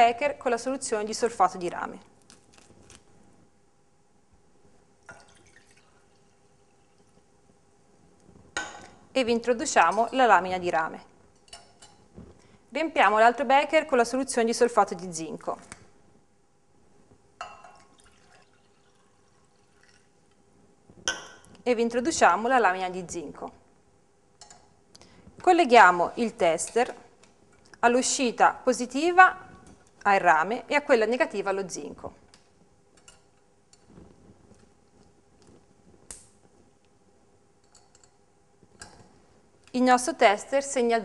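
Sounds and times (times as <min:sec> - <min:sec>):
liquid pouring into glass beaker: 0:05.0 - 0:07.3, 0:17.5 - 0:20.3.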